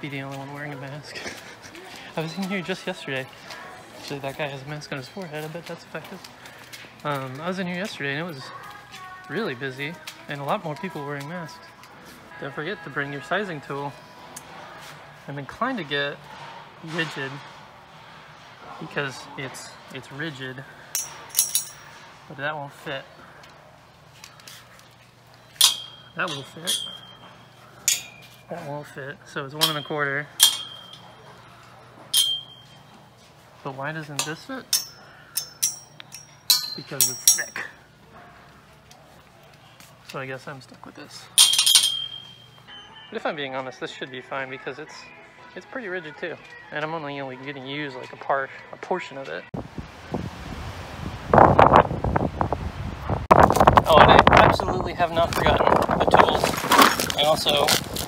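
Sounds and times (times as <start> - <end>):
wind buffeting microphone: 49.6 - 58.0.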